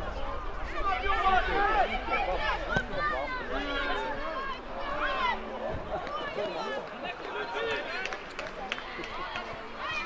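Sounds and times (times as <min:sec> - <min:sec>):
voices calling and talking: 0:00.0 - 0:10.0.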